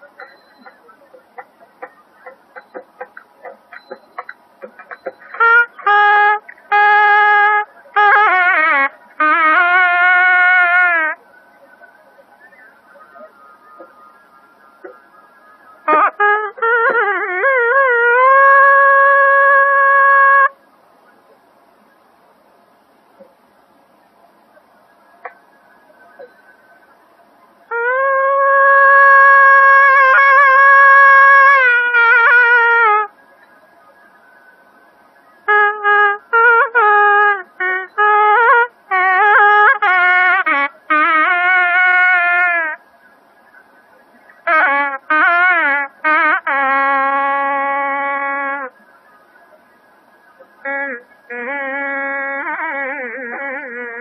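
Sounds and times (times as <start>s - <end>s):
double-reed pipe note: 0.0s - 21.4s, 27.6s - 49.7s, 50.4s - 54.0s
faint recording hiss: 0.0s - 54.0s.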